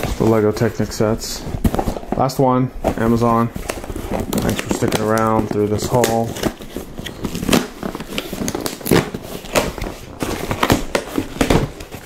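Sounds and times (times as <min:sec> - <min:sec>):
packaging crinkling and clicking: 0:03.1 - 0:12.0.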